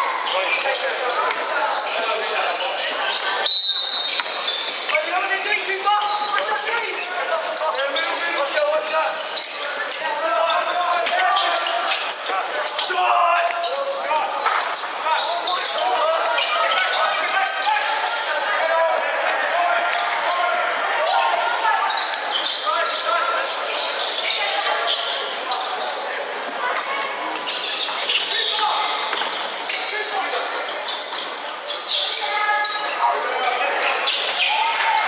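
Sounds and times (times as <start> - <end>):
people calling out and talking: 0.0 - 35.0.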